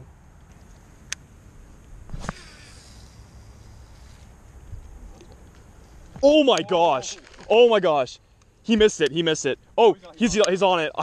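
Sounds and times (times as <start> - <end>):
quiet outdoor ambience: 0.0 - 11.0
fishing rod swish: 2.1 - 3.2.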